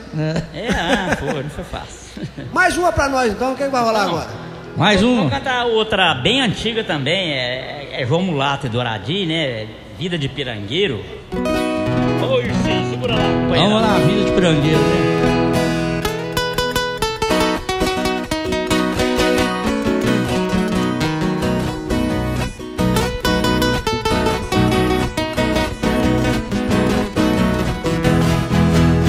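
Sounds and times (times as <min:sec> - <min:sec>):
plucked and strummed guitars: 0:11.2 - 0:29.0.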